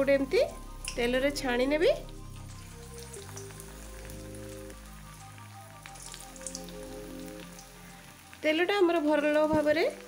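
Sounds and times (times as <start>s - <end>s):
food deep-frying in oil: 0.0s - 10.0s
soft background music: 0.0s - 10.0s.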